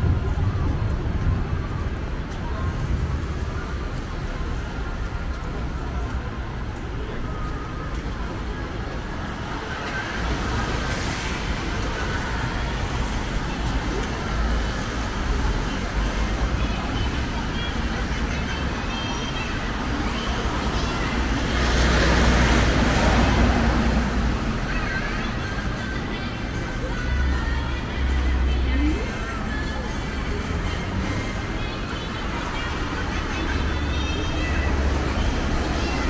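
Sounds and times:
passers-by talking: 0.0s - 36.0s
steady traffic noise: 0.0s - 36.0s.

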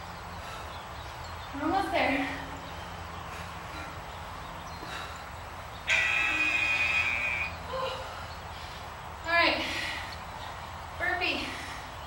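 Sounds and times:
interval timer electronic buzz: 5.8s - 7.6s.

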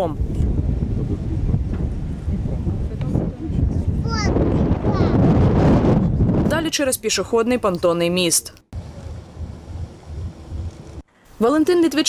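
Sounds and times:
wind buffeting microphone: 0.0s - 7.6s, 8.7s - 11.0s.

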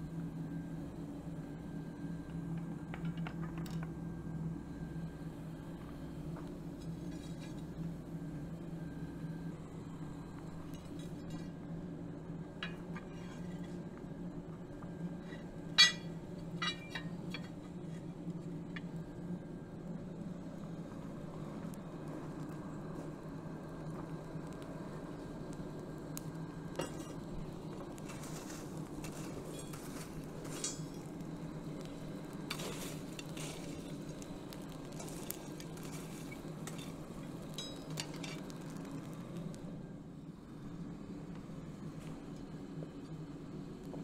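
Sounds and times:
forge air supply hum: 0.0s - 44.0s
clinks and crackles in fire: 1.4s - 39.8s.

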